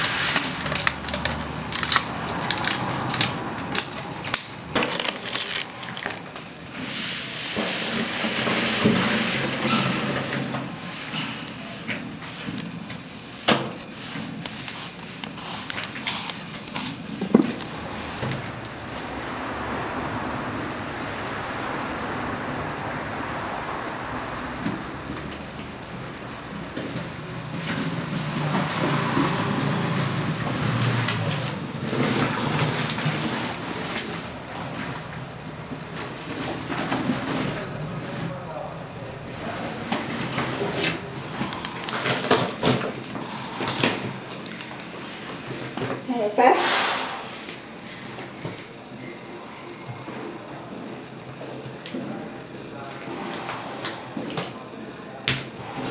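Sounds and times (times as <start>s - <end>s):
stiff material crackling and tearing: 0.0s - 6.8s
rubbing and scraping: 0.0s - 23.4s.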